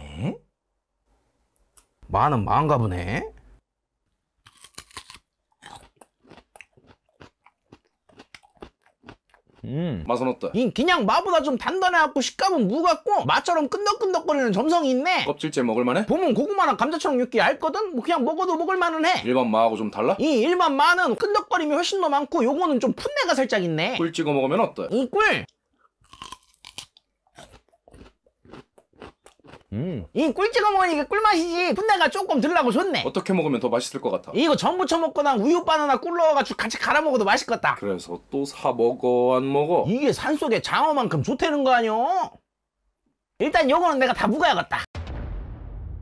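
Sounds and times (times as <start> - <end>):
crisp crunching while chewing: 4.4 - 9.8, 26.0 - 29.7.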